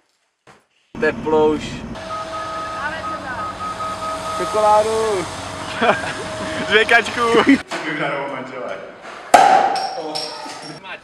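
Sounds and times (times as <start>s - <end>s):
armored vehicle engine rumble: 1.0s - 7.6s
high pulsing whine: 1.0s - 7.6s.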